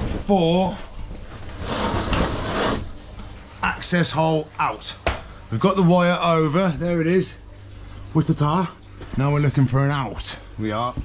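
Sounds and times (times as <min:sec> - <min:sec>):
ceiling tile scraping in grid: 0:01.3 - 0:03.0.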